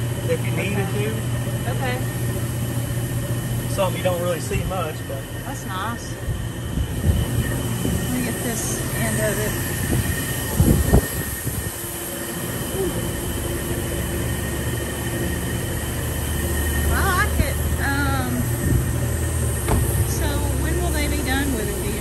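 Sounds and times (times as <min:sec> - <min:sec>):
low rumble of machinery: 0:00.0 - 0:22.0.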